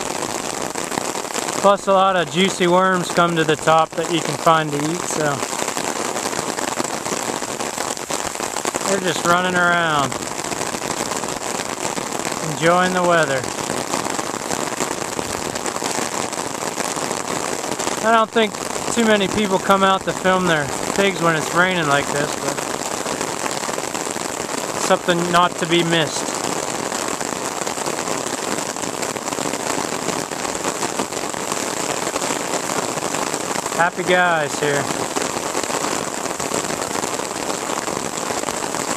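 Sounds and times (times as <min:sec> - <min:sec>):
steady rain falling: 0:00.0 - 0:38.9.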